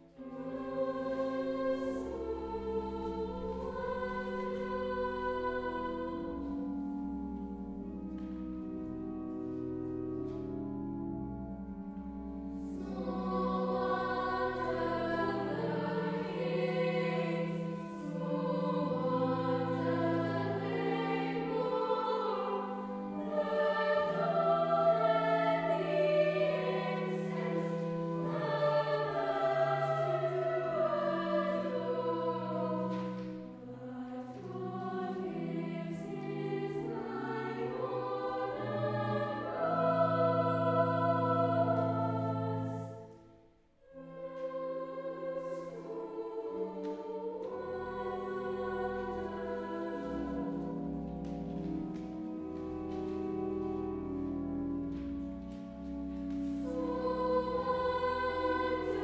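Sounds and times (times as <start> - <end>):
children's choir singing: 0.0 - 8.3, 12.6 - 43.2, 43.8 - 59.0
sustained organ notes: 0.0 - 59.0.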